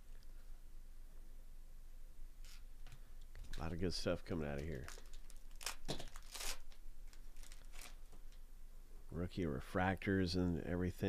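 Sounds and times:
wrapper tearing and crinkling: 0:04.6 - 0:08.2.

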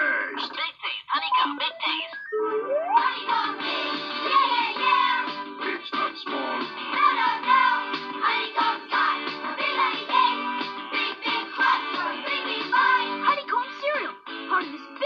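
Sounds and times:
upbeat jingle with sung vocals: 0:01.1 - 0:14.0
rising pitch slide: 0:01.5 - 0:03.6.

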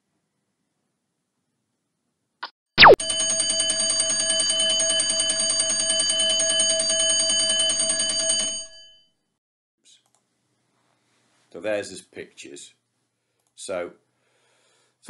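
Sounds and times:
alarm clock bell ringing: 0:03.0 - 0:09.1.

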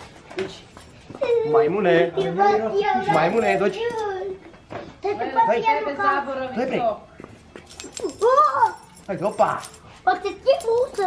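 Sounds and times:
keys jangling: 0:03.0 - 0:04.1, 0:07.4 - 0:11.0.

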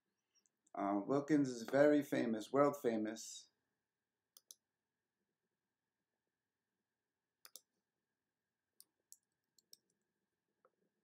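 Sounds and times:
computer mouse clicks: 0:04.4 - 0:04.6, 0:07.4 - 0:07.7, 0:09.1 - 0:10.0.

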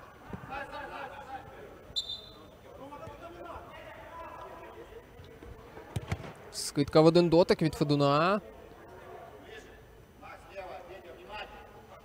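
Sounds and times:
referee's whistle blast: 0:02.0 - 0:02.5.

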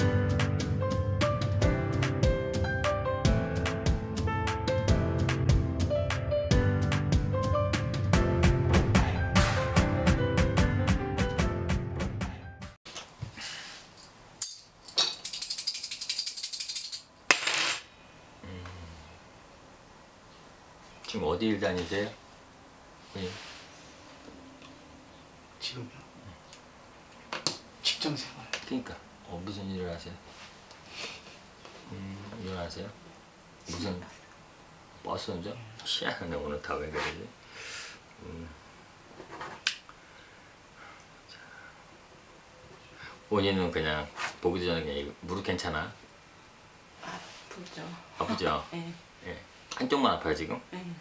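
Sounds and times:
small metal pieces rattling: 0:14.4 - 0:17.1.

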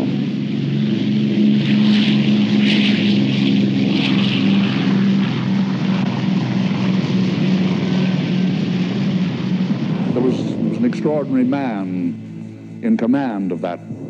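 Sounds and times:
propeller aircraft engines droning: 0:00.0 - 0:14.0.

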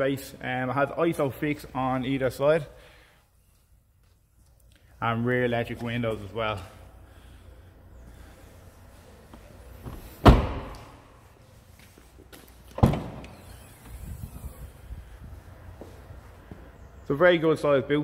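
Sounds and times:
car doors slamming: 0:09.8 - 0:11.0, 0:12.7 - 0:13.4.

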